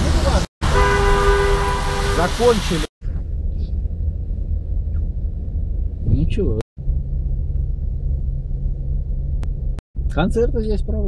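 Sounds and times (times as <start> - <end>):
car cabin engine rumble: 3.0 - 11.0.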